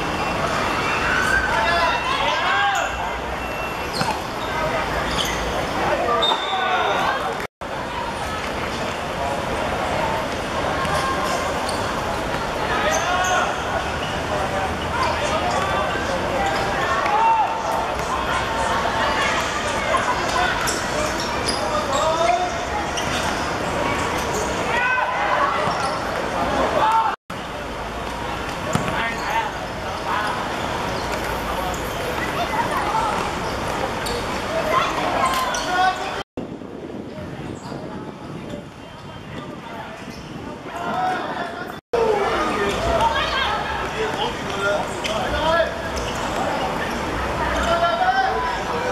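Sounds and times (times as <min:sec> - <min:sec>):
steady background noise: 0:00.0 - 0:48.9
players shouting: 0:12.5 - 0:23.2
ball kicked and bouncing: 0:28.7 - 0:29.0.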